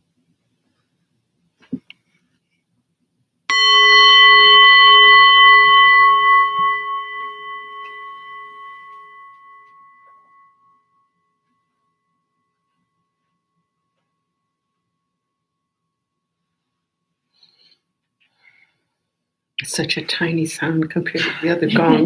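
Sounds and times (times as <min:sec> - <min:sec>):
meditation bell ringing: 0:03.5 - 0:13.1.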